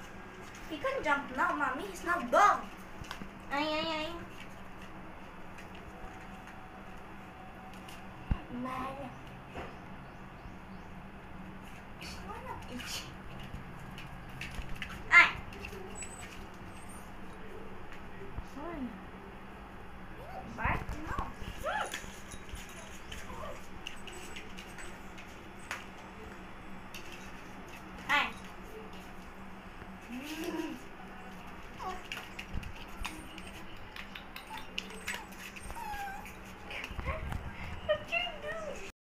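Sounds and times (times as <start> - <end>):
low steady hum: 0.0 - 38.9
puppy whining: 15.6 - 17.6, 21.6 - 25.9, 31.8 - 38.9
puppy yapping: 33.0 - 36.4.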